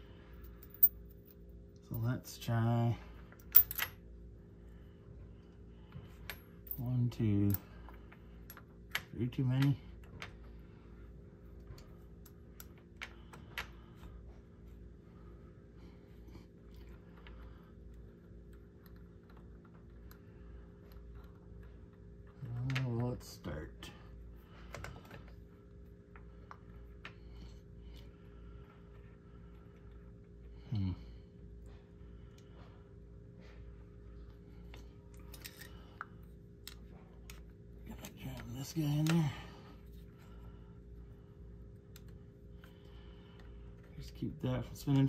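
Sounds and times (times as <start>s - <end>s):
faint steady hum: 0.0s - 45.0s
metal washers clicking: 3.4s - 3.9s.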